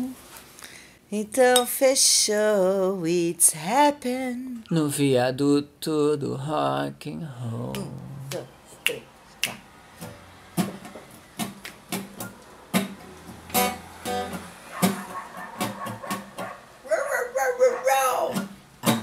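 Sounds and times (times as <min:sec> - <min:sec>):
guitar strummed: 0:10.6 - 0:16.5, 0:18.2 - 0:19.0.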